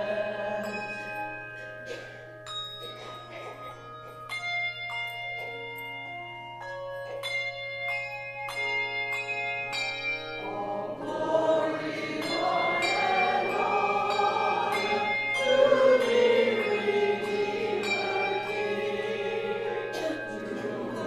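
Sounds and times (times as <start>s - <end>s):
church choir singing: 0.0s - 1.2s, 10.4s - 21.0s
ringing bell-like notes: 0.0s - 21.0s.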